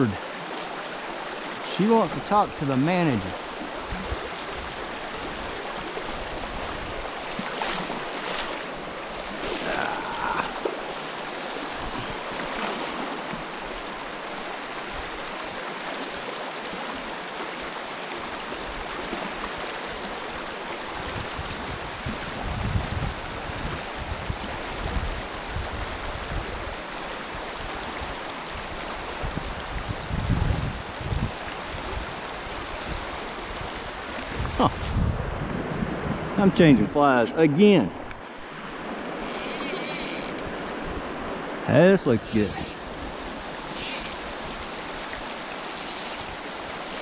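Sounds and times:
creek babbling over stones: 0:00.0 - 0:22.3, 0:37.0 - 0:47.0
wind buffeting microphone: 0:21.0 - 0:26.6, 0:29.1 - 0:37.0.

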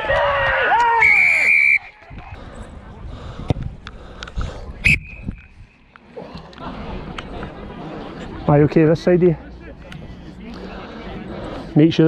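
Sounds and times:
referee whistle blast: 0:01.0 - 0:01.9, 0:04.8 - 0:05.5.

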